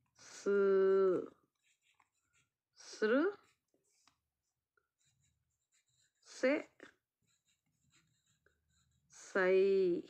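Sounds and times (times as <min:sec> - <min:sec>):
pencil writing on paper: 0:01.5 - 0:02.6, 0:04.9 - 0:06.5, 0:07.2 - 0:09.2.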